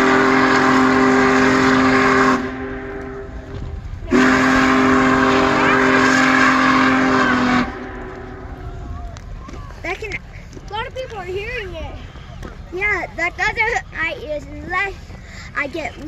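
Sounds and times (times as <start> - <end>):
steam locomotive whistle blasts: 0.0 - 3.4, 4.1 - 8.5.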